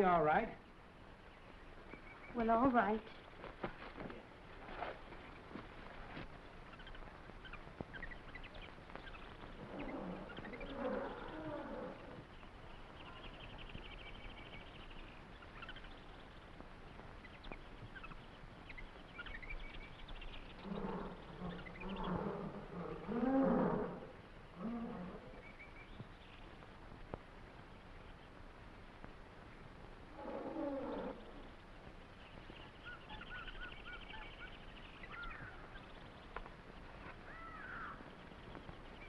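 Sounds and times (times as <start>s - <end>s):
jungle bird calls and chirps: 6.1s - 16.5s, 17.2s - 26.6s, 30.1s - 39.0s
large animal roaring and growling: 9.6s - 12.2s, 20.6s - 25.4s.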